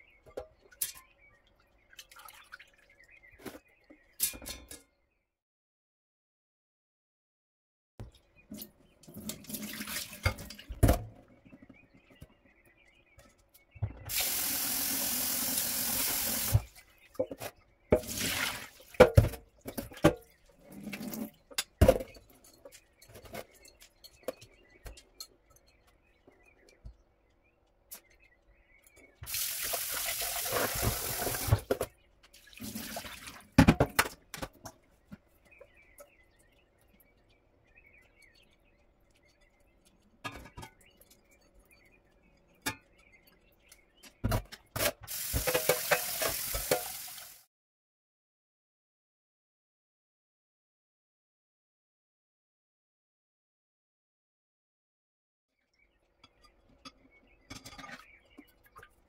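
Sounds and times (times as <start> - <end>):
water splashing: 18.0 - 19.0, 32.4 - 33.5.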